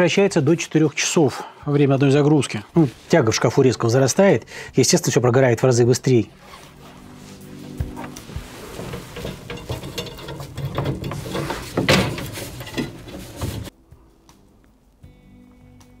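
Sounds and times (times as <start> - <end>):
metal rod and hooks rattling: 7.9 - 13.7.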